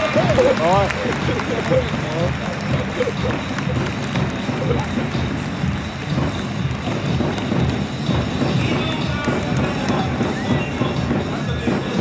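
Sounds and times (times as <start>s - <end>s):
large crowd noise: 0.0s - 12.0s
stadium music over loudspeakers: 0.0s - 12.0s.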